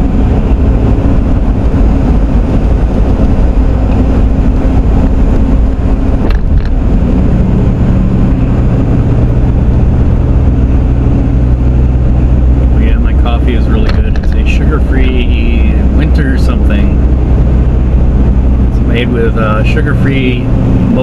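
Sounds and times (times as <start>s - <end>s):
car cabin road hum: 0.0s - 21.0s
person talking: 12.8s - 17.0s, 18.8s - 21.0s.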